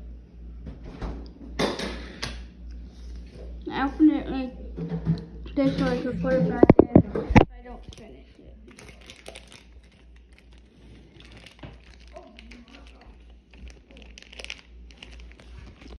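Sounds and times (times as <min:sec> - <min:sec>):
handling noise on microphone: 0:05.6 - 0:07.5
wrapper crinkling: 0:07.8 - 0:16.0.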